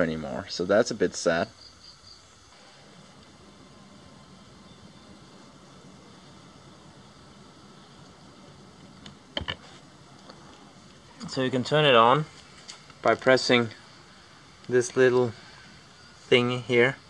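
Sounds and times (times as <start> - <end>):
faint background hum: 0.0 - 17.0.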